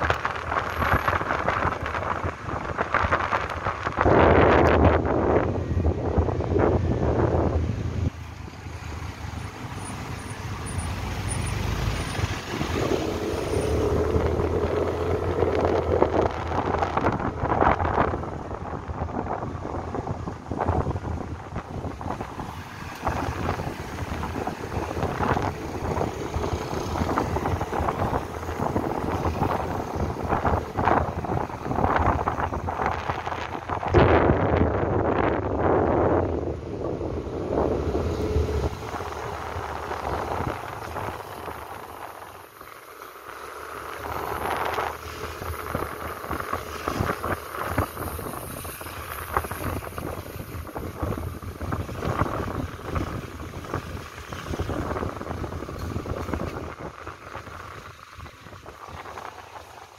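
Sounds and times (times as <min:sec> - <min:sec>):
traffic rumble: 0:00.0 - 0:59.9
wind buffeting microphone: 0:00.0 - 0:59.9.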